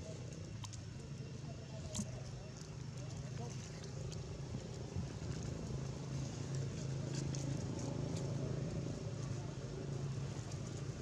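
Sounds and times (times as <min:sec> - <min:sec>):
low engine hum: 0:00.0 - 0:11.0.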